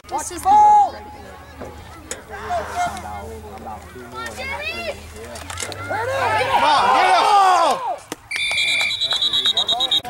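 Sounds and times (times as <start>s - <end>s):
spectators talking and calling out: 0.0s - 10.0s.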